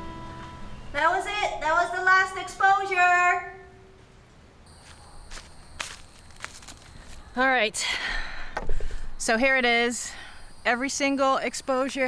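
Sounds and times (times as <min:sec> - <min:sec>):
footsteps on dry leaves: 0:04.7 - 0:07.4.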